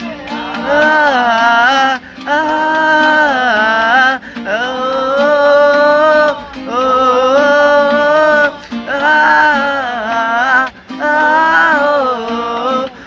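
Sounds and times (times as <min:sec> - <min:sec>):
acoustic guitar: 0:00.0 - 0:13.0
men singing together: 0:00.0 - 0:13.0.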